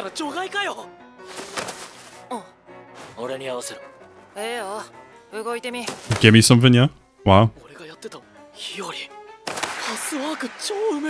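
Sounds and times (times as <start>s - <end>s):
background music: 0.0s - 11.0s
character speaking: 6.1s - 7.6s.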